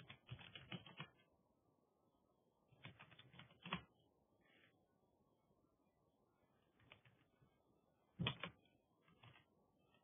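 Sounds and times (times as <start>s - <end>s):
computer keyboard keystrokes: 0.0s - 1.2s, 2.8s - 3.9s, 8.2s - 9.5s.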